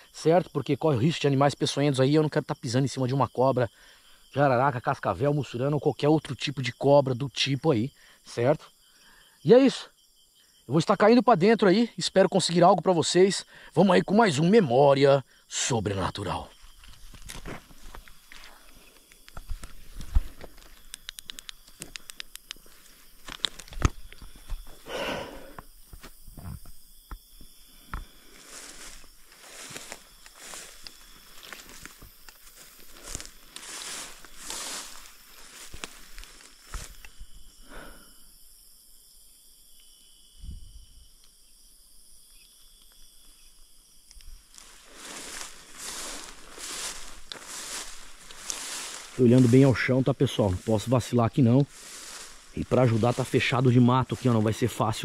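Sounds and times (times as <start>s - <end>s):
footsteps: 16.5s - 26.8s, 27.4s - 37.2s, 44.4s - 55.0s
tall grass swishing and rustling: 28.2s - 37.2s, 44.4s - 54.5s.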